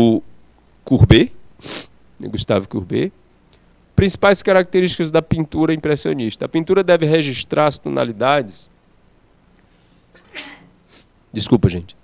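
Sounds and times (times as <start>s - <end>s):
man's stifled sneeze: 10.2s - 11.1s.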